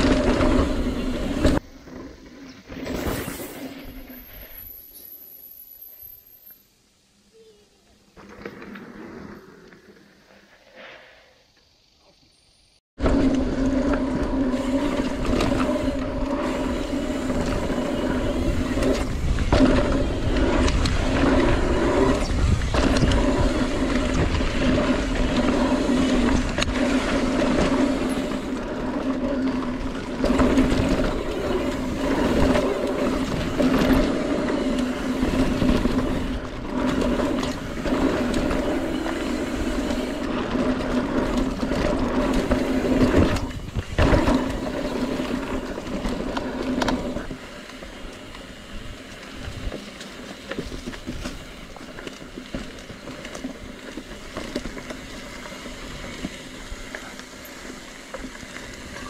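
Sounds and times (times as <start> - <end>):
bike tyres rumbling on dirt trail: 0.0 - 6.4, 8.1 - 11.3, 13.0 - 59.0
wind buffeting microphone: 14.4 - 28.6, 29.8 - 45.6.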